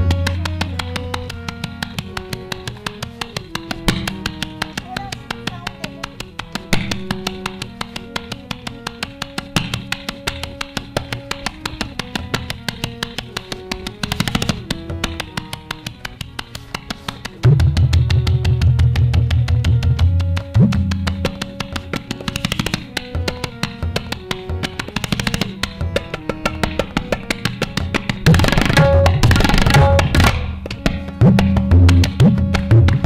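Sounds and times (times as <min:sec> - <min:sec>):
harmonium melody: 0:00.0 - 0:33.0
tabla strokes: 0:00.0 - 0:33.0.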